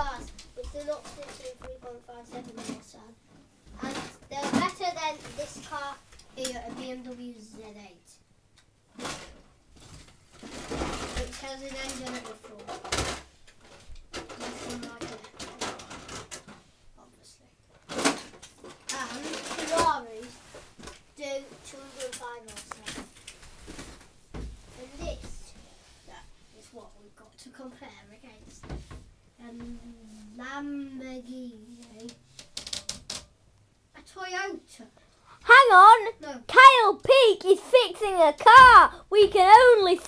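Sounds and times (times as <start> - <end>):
child's voice: 0.0 - 3.2, 3.8 - 8.2, 18.9 - 20.4, 24.8 - 28.5, 29.4 - 32.2, 34.0 - 40.0.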